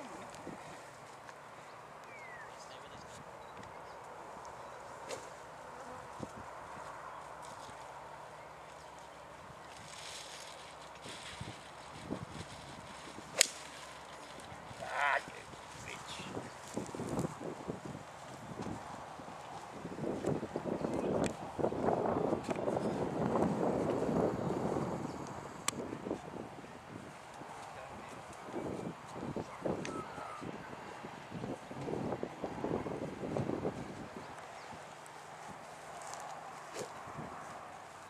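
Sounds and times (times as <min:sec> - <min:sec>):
rustling noise: 0:08.6 - 0:20.4, 0:33.3 - 0:38.0
golf club striking ball: 0:13.4 - 0:13.6.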